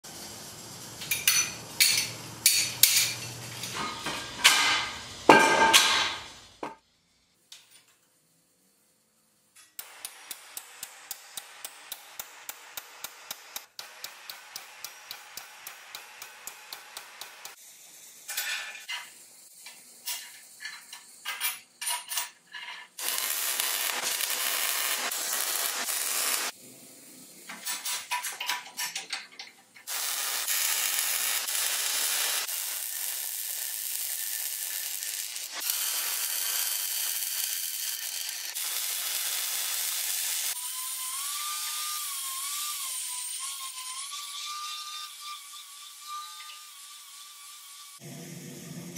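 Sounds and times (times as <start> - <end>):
steady hissing noise: 0.1 - 34.8
metal clanks: 1.0 - 6.8
angle grinder cutting steel: 9.8 - 21.2, 23.0 - 26.6, 29.8 - 48.1.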